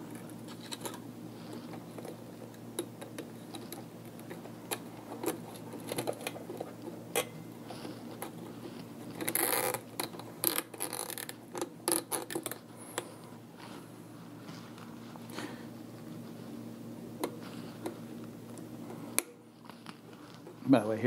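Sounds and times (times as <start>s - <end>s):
wires clicking and rustling: 0.0s - 13.8s
cable tie ratcheting zip: 9.2s - 12.6s.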